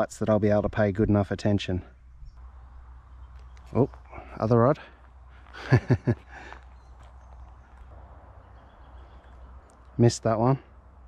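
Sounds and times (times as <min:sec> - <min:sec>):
man laughing: 0:05.5 - 0:06.6.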